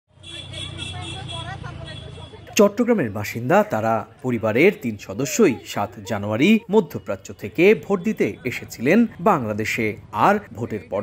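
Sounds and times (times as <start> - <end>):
traffic running steadily: 0.1 - 11.0
people talking: 0.3 - 11.0.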